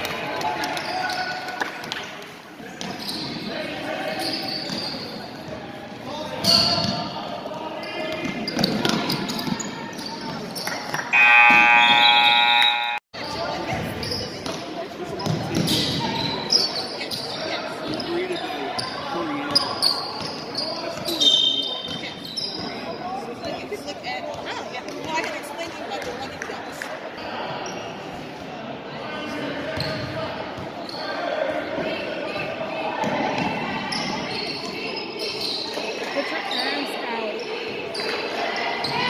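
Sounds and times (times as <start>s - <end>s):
sneakers squeaking: 2.8s - 5.6s, 7.8s - 23.0s, 33.4s - 39.0s
spectators' voices: 7.0s - 39.0s
scoreboard buzzer: 11.2s - 13.0s.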